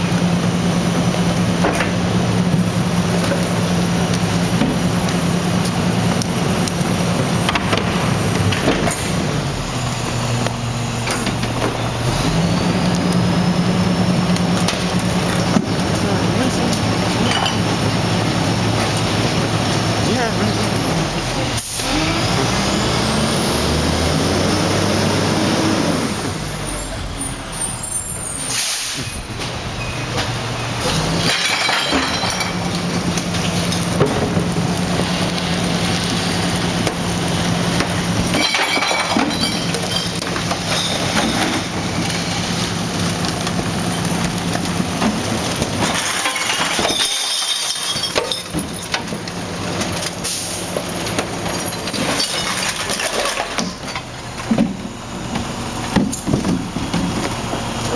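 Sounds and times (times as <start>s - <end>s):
garbage truck diesel engine revving: 0.0s - 47.0s, 48.5s - 57.9s
air brake hiss: 28.4s - 29.2s.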